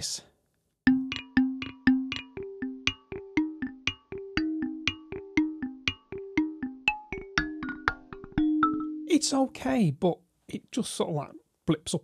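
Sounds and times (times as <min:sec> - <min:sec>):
synth mallet notes: 0:00.9 - 0:09.4.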